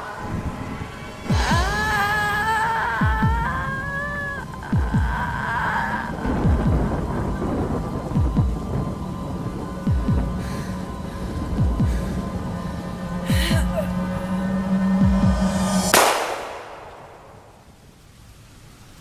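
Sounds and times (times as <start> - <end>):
steady rain-like hiss: 0.0 - 19.0
heartbeat-like low thumps: 1.2 - 2.1, 3.0 - 3.6, 4.7 - 5.3, 6.2 - 15.9
woman screaming: 1.3 - 7.4, 13.3 - 14.7.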